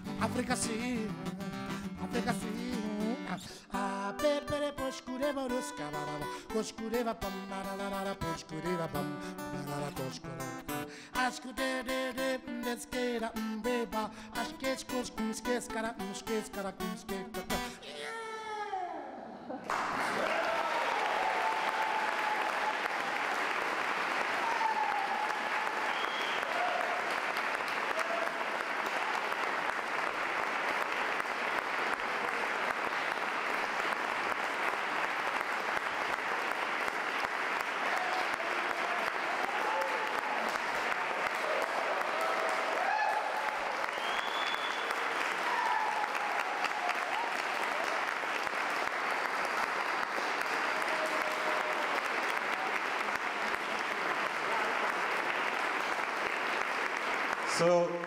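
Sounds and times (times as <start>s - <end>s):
audience applause: 19.6s - 58.0s
audience cheering: 19.7s - 58.0s.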